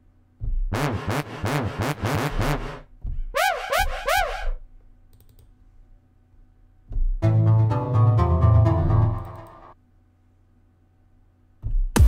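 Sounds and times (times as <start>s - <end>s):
synthesizer swoops gliding in pitch: 0.7s - 4.6s.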